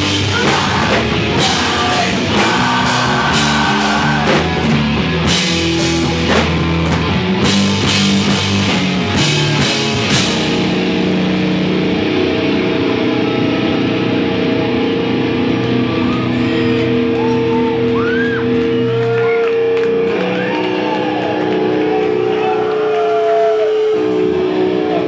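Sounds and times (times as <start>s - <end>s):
high sliding guitar notes: 0.0s - 17.2s
electric guitars sustained notes: 0.0s - 25.0s
live rock band playing: 0.0s - 25.0s.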